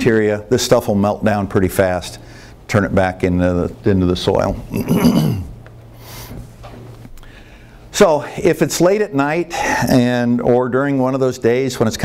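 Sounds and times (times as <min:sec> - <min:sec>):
man coughing: 0:04.7 - 0:05.6
short breath: 0:07.2 - 0:07.9.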